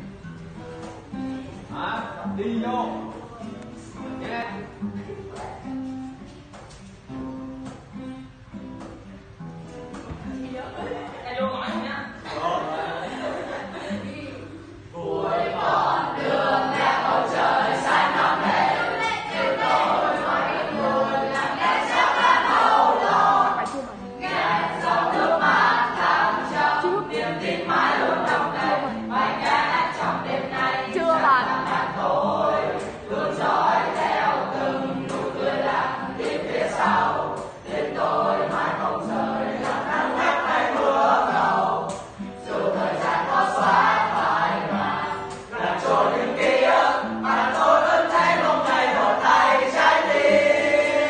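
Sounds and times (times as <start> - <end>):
children's choir singing: 12.4 - 51.0.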